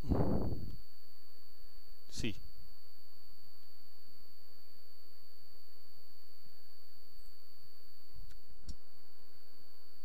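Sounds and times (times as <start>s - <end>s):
high-pitched electrical whine: 0.0s - 10.0s
low hum: 0.0s - 10.0s.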